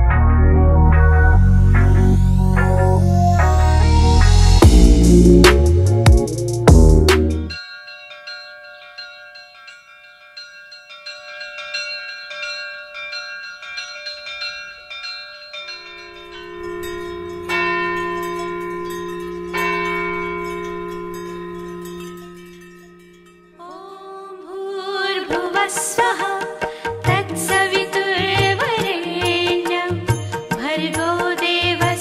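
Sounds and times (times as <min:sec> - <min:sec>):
loud electronic music: 0:00.0 - 0:07.5
low steady drone: 0:00.0 - 0:07.5
loud bell strikes: 0:03.4 - 0:08.4, 0:13.0 - 0:23.6
soft bell-like tones: 0:07.4 - 0:26.4.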